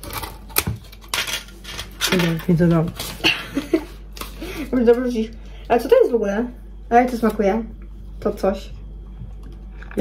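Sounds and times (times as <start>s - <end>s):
kitchen clatter: 0.0s - 3.9s.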